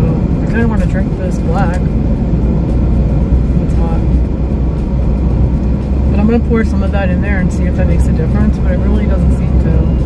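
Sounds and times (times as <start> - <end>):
car engine rumble from inside: 0.0 - 10.0.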